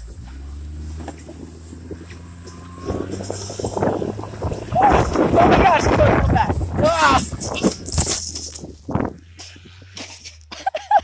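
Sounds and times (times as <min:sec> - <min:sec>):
engine low rumble: 0:00.0 - 0:11.0
wind noise on microphone: 0:02.8 - 0:09.9.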